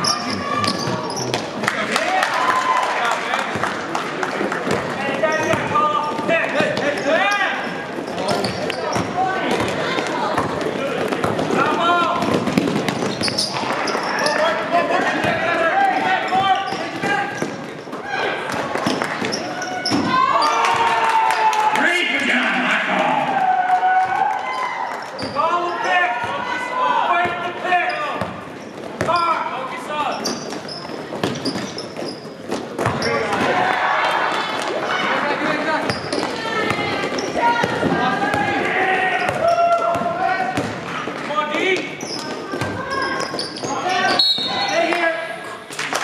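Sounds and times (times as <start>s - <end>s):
people calling and shouting: 0.0s - 2.8s, 5.0s - 32.1s, 32.7s - 45.7s.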